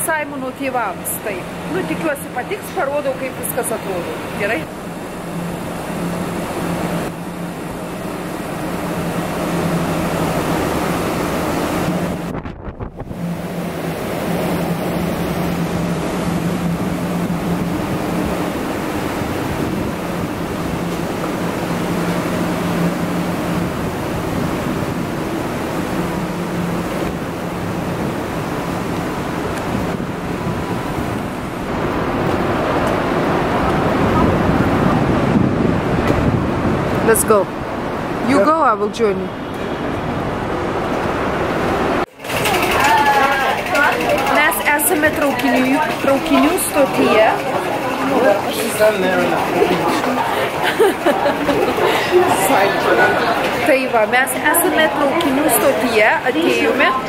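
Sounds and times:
low constant hum: 0.0s - 57.0s
wind on microphone: 0.8s - 43.2s.

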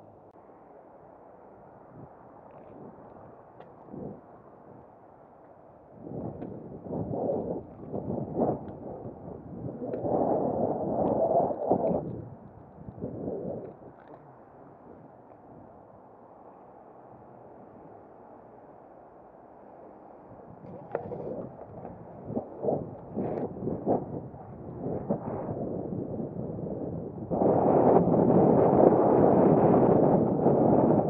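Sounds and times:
wind buffeting microphone: 1.8s - 18.5s, 19.6s - 31.0s.

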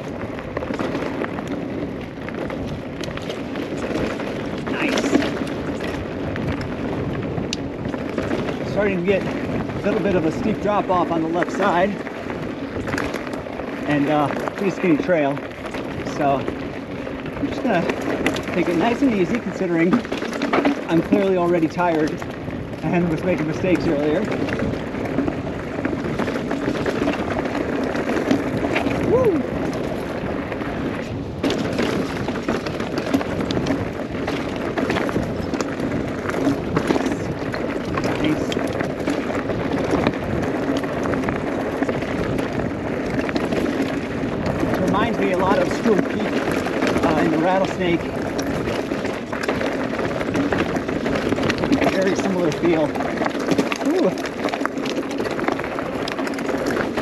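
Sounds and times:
bike knocking over bumps: 0.0s - 57.0s
bike tyre and frame rattle: 0.0s - 57.0s.

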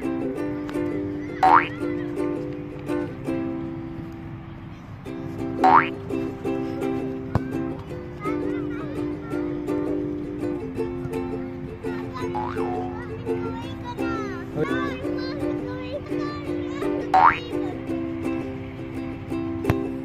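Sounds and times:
upbeat ukulele music: 0.0s - 20.0s.

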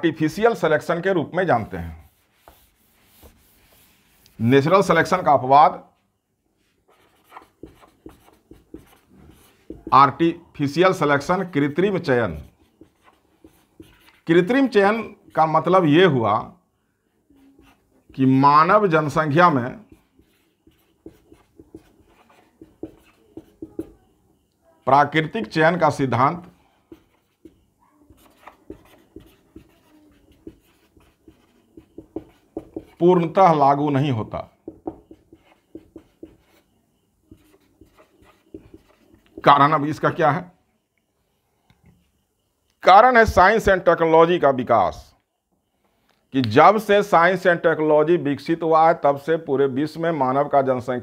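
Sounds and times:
marker writing on whiteboard: 1.5s - 5.4s, 6.8s - 15.9s, 17.4s - 24.1s, 25.4s - 33.6s, 34.6s - 36.7s, 37.3s - 40.2s.

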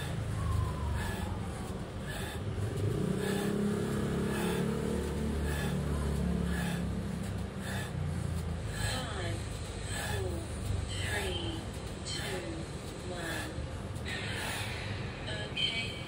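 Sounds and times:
vehicle engine running: 0.0s - 14.6s.

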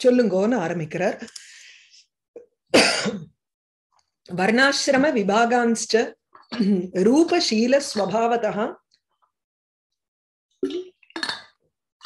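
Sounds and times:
woman clearing throat: 2.8s - 3.4s.

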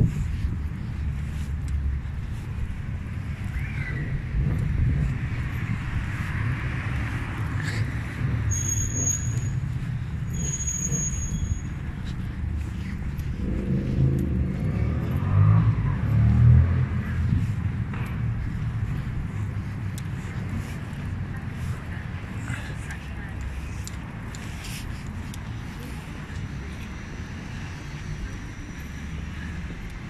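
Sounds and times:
city street traffic: 0.0s - 30.0s
motor vehicle passing: 0.0s - 30.0s.

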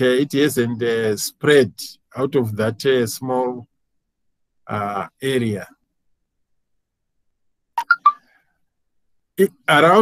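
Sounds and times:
electronic notification chime: 7.8s - 8.2s.

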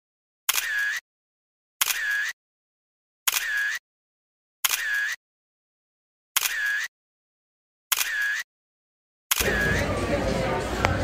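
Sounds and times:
camera shutter click: 0.5s - 1.0s, 1.8s - 2.4s, 3.3s - 3.8s, 4.6s - 5.2s, 6.4s - 6.9s, 7.9s - 8.4s, 9.3s - 9.5s.

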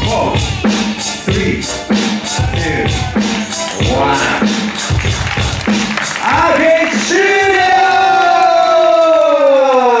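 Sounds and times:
faint crowd cheering: 2.8s - 10.0s.

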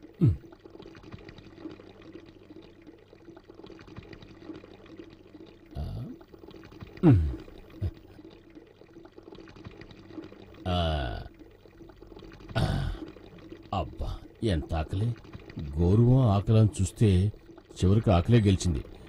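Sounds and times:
comic stomach gurgling: 0.0s - 2.2s, 3.7s - 14.3s
low steady hum: 0.0s - 19.0s.

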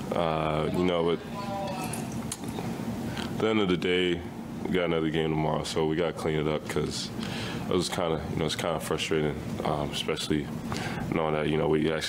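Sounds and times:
steady low hiss: 0.0s - 12.0s.

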